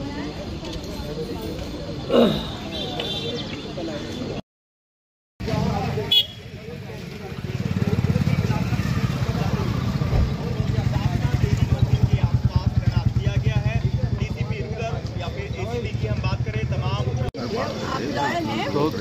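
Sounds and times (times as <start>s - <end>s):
people talking: 5.4s - 19.0s
motorcycle engine idling: 6.1s - 16.1s.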